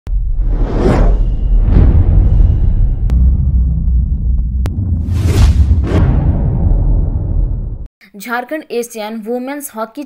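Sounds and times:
whooshes: 0:00.3 - 0:07.9
sudden loud hit: 0:00.9 - 0:07.9
deep continuous rumble: 0:02.0 - 0:07.9.

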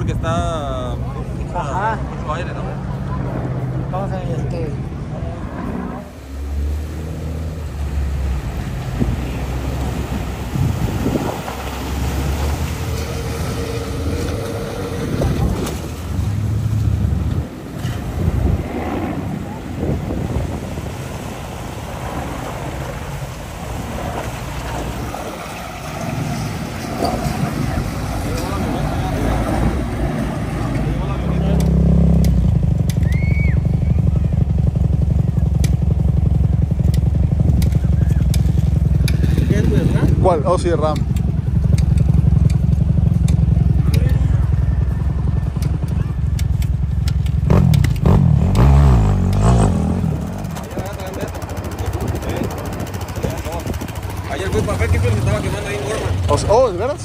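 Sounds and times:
off-road vehicle engines running: 0:00.0 - 0:57.0
outdoor noise: 0:00.0 - 0:57.0
pickup truck engine on sand: 0:05.3 - 0:34.6, 0:47.4 - 0:57.0.

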